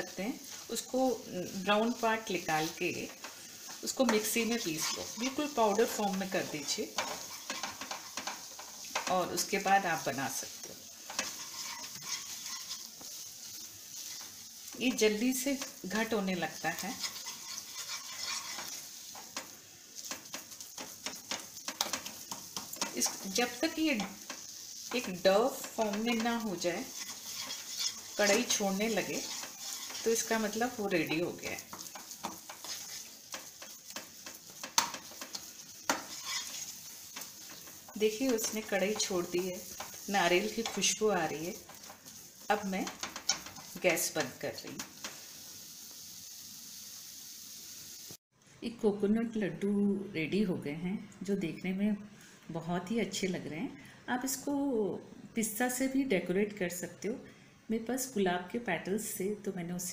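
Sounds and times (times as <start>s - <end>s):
faint sizzle: 0.0s - 59.9s
spatula scraping a pan: 1.5s - 45.5s.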